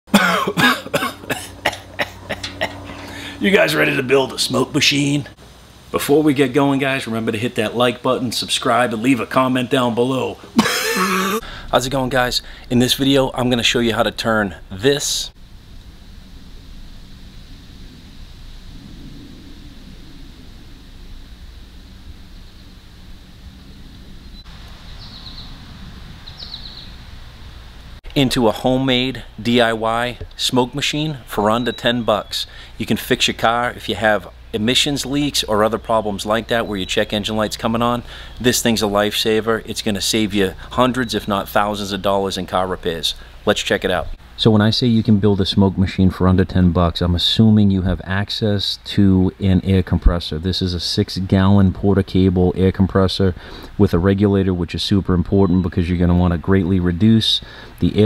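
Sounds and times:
man coughing: 0.1s - 3.0s, 10.6s - 11.5s
low outdoor rumble: 0.1s - 58.0s
high bird chirps: 24.2s - 25.6s, 26.2s - 27.0s.

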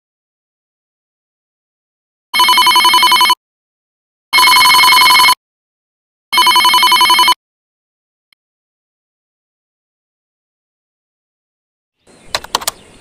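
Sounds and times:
smartphone alarm ringing: 2.4s - 3.4s, 4.3s - 5.4s, 6.3s - 7.4s.

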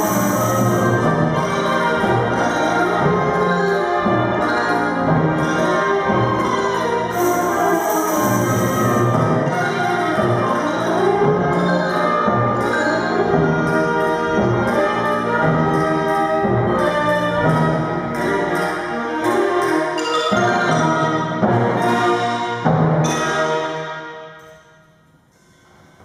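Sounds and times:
clarinets: 0.0s - 1.2s, 7.1s - 9.3s
mallet percussion: 0.0s - 23.8s
wind and percussion band playing: 0.0s - 24.6s.

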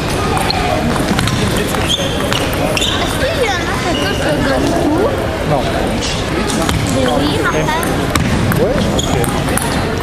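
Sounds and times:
voices in a large hall: 0.0s - 10.0s.

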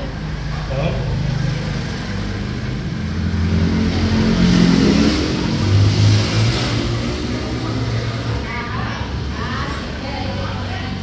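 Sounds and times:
vehicle engine accelerating past: 0.4s - 11.0s.

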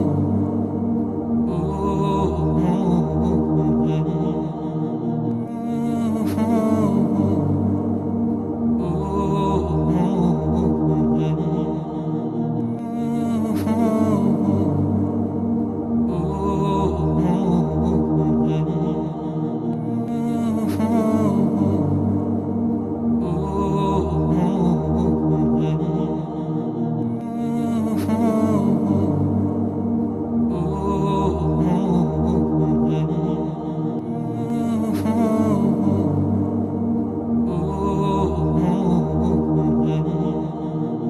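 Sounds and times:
slow chanted vocal music: 0.0s - 41.0s
sustained drone: 0.0s - 41.0s.

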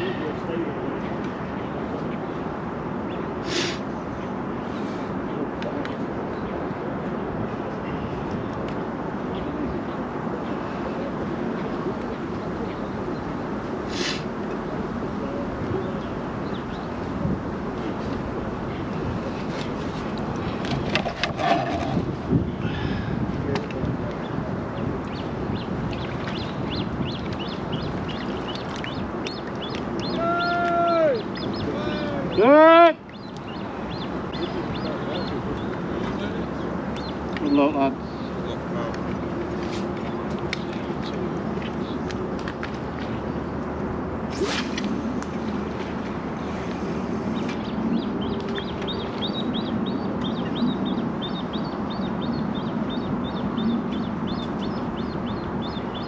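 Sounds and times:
wind: 0.0s - 56.0s
lapping water: 44.3s - 47.6s.

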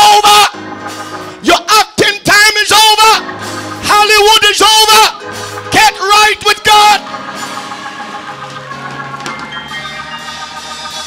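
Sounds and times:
sustained chords: 3.2s - 11.0s.

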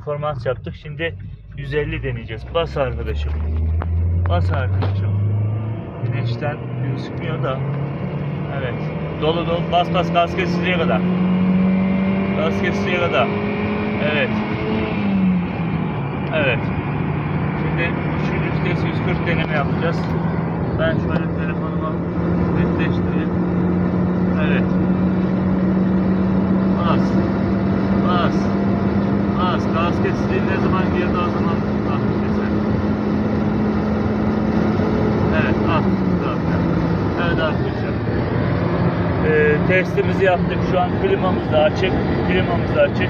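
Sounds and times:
car engine and road drone in cabin: 0.0s - 43.0s.

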